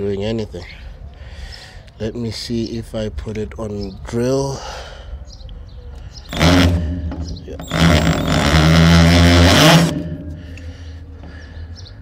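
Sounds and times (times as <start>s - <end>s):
cordless drill hammering: 6.3s - 10.6s.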